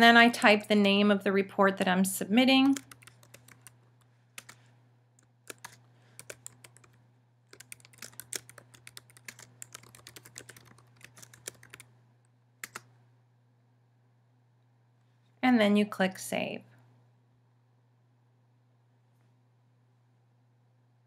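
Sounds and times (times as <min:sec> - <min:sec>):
computer keyboard typing: 0:02.6 - 0:04.6, 0:05.4 - 0:11.9, 0:12.6 - 0:12.9.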